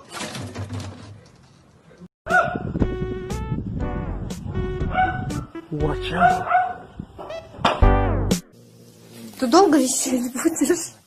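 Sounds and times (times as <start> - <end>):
dog barking: 2.3 - 2.7, 4.9 - 5.5, 6.2 - 6.9
music playing: 2.7 - 6.6, 7.8 - 8.5.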